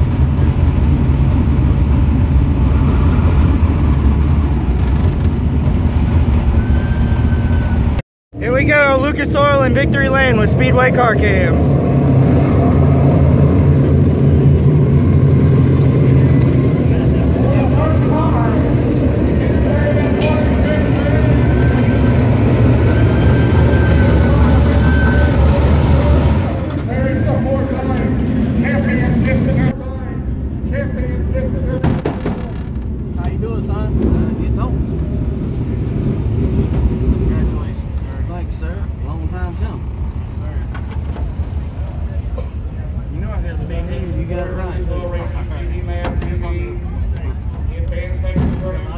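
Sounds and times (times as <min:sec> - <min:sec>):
race car engine running: 0:00.0 - 0:48.9
indistinct voices: 0:08.4 - 0:40.9.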